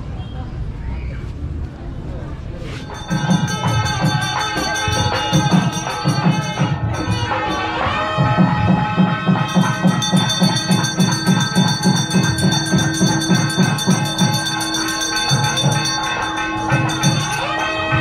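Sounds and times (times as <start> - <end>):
metal bell ringing: 2.7 - 8.2, 9.3 - 18.0
drum beating fast rhythm: 2.8 - 18.0.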